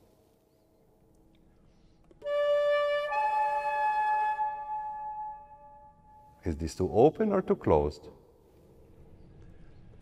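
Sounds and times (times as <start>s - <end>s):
flute playing held notes: 2.2s - 6.2s.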